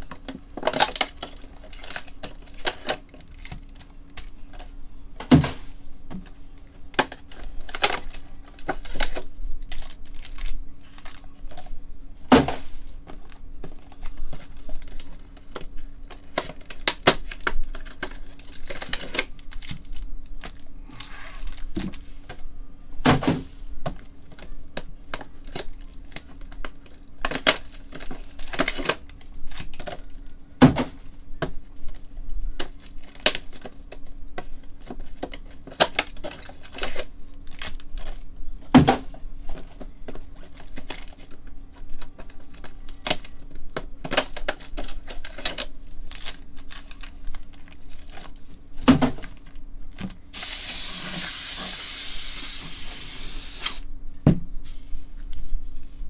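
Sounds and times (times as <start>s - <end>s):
foil wrappers crinkling and tearing: 0.2s - 4.8s, 6.2s - 11.8s, 12.6s - 22.4s, 24.1s - 30.4s, 31.0s - 38.6s, 39.4s - 53.8s.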